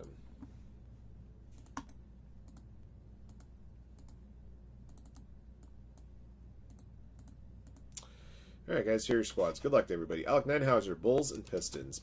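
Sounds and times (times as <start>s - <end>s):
low steady hum: 0.0s - 12.0s
keyboard and mouse clicks: 1.6s - 2.7s, 3.3s - 4.2s, 4.9s - 6.1s, 6.7s - 8.1s.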